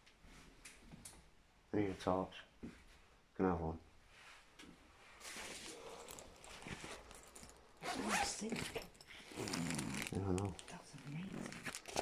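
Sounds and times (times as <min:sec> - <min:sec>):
handling rustling: 0:05.0 - 0:12.0.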